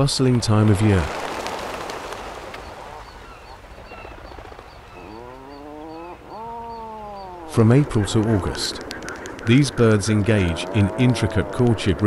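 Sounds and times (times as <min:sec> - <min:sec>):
surf washing against cliffs: 0:00.0 - 0:03.9
seabird honking calls: 0:02.6 - 0:12.0.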